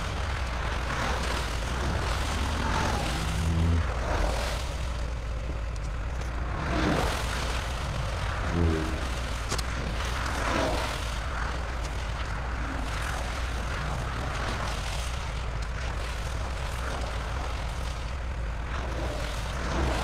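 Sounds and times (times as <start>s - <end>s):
diesel truck engine running: 0.0s - 9.7s
road noise: 0.0s - 20.0s.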